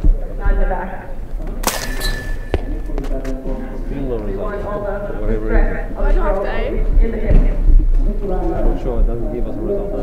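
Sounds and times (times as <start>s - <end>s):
ball striking hard surface crack: 1.6s - 3.4s.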